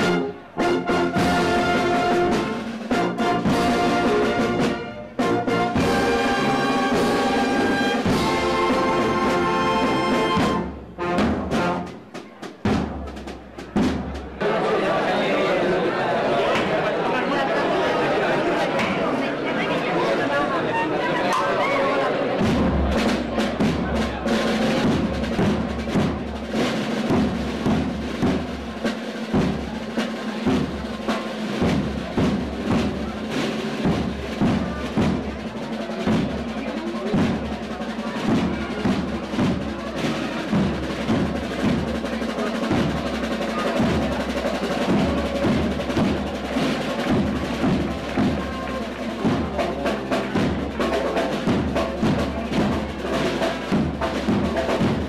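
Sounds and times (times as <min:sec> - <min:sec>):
wind band playing a march: 0:00.0 - 0:15.2, 0:21.3 - 0:55.0
snare drum rolls: 0:00.0 - 0:19.2, 0:21.3 - 0:55.0.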